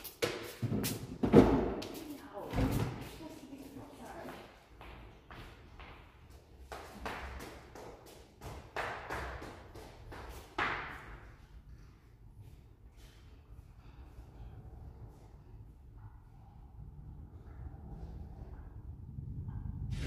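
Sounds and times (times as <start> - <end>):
footsteps in echoing hall: 0.0 - 14.1.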